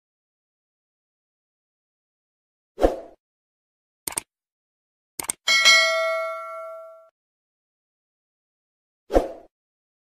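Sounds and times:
mouse clicks: 4.1 - 4.3, 5.2 - 5.4
notification bell ding: 5.5 - 7.1.

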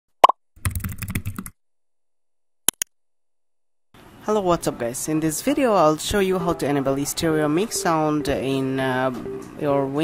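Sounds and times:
computer keyboard typing: 0.6 - 1.5.

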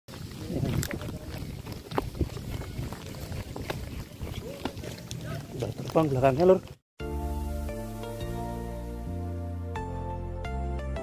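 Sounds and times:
wind buffeting microphone: 0.1 - 5.9.

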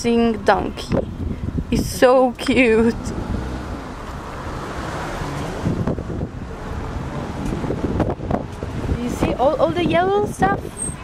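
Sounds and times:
road noise of moving car: 0.0 - 11.0
wind noise on microphone: 0.0 - 11.0.

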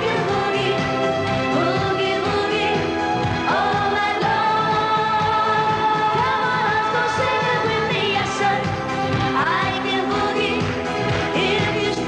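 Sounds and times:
band accompaniment: 0.0 - 12.0
women singing pop song: 0.0 - 12.0.

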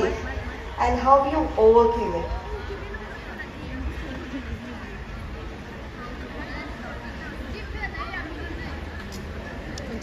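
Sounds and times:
audience chattering: 0.0 - 10.0.

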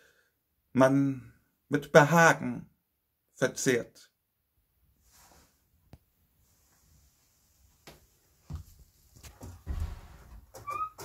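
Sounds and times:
handling rustling and knocks: 7.6 - 11.0.

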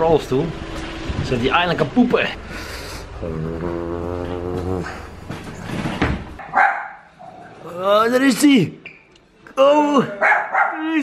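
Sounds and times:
wheelchair wheels rolling on tiles: 4.7 - 6.4.

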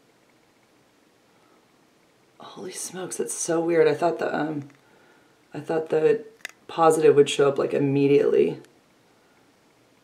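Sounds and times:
recording hiss: 0.0 - 10.0.

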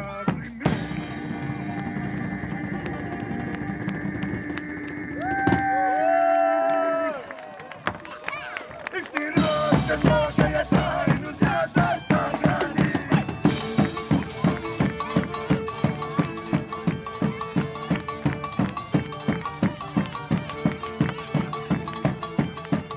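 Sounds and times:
large drum beating: 9.4 - 22.9
bowed string melody: 9.7 - 22.9.

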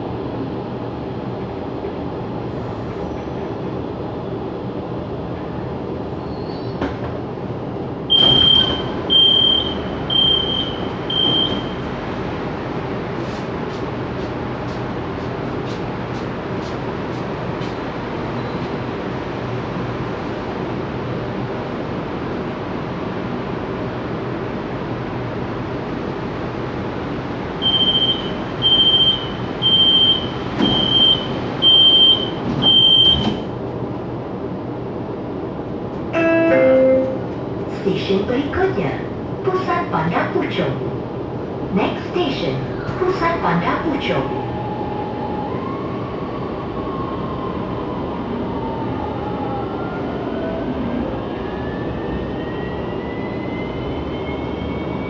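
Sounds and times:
door warning beeps: 8.1 - 11.9, 27.6 - 33.5.

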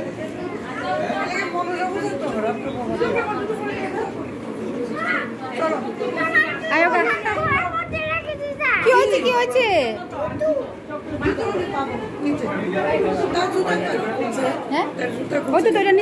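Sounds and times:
people chatting: 0.0 - 16.0.

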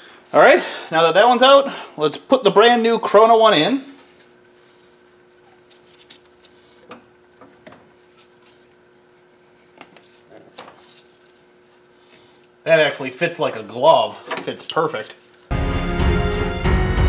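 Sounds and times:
faint steady hum: 0.0 - 15.5.

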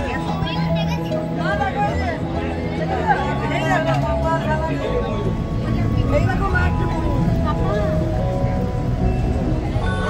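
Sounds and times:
bus engine running: 0.0 - 10.0
people's voices: 0.0 - 10.0.

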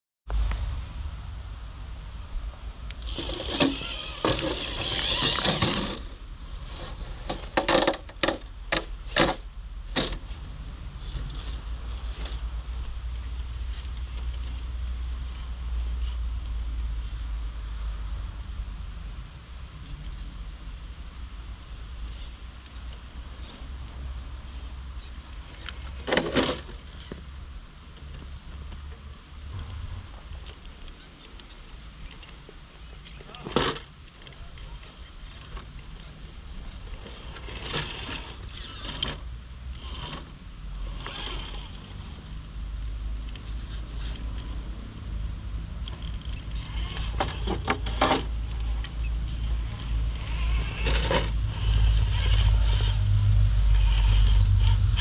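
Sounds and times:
low steady rumble: 0.3 - 55.0.

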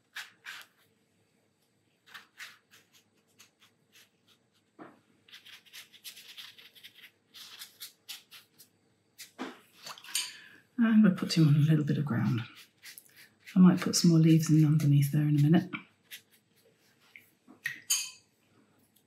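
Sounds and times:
brush strokes on paper: 12.0 - 17.4.

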